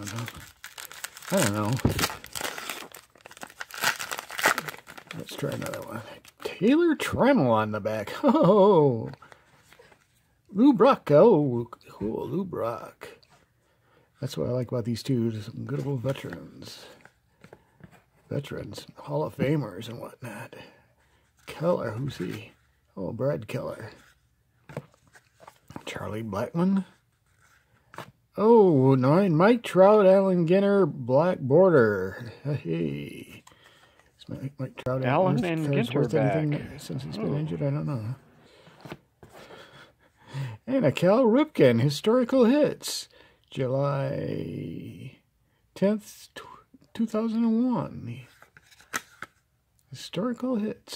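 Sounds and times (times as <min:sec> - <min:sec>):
wrapper crinkling and tearing: 0:00.0 - 0:06.5
cards being shuffled by hand: 0:48.2 - 0:49.4.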